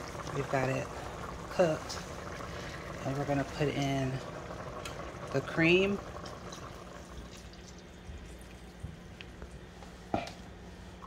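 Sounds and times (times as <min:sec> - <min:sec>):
liquid pouring into soup: 0:00.0 - 0:09.6.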